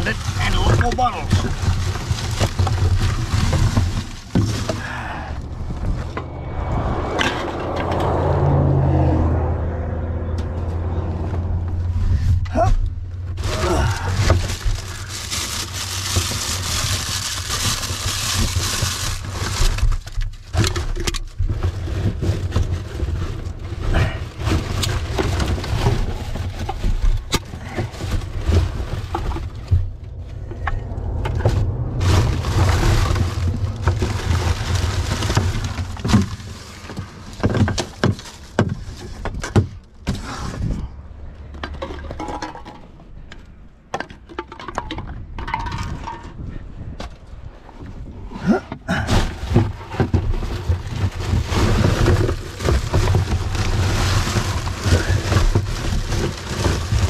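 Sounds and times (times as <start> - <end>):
plastic bags rustling: 0.0 - 6.7, 12.5 - 39.6, 49.2 - 57.0
steady low rumble: 1.5 - 15.2, 25.0 - 37.4, 39.8 - 44.4.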